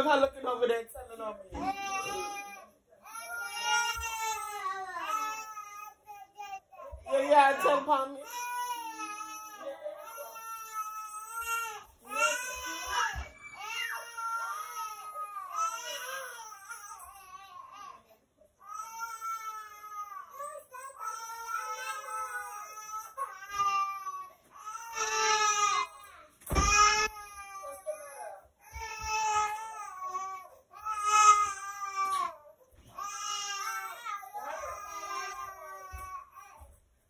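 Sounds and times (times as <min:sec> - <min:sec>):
baby crying: 0:01.6 - 0:36.8.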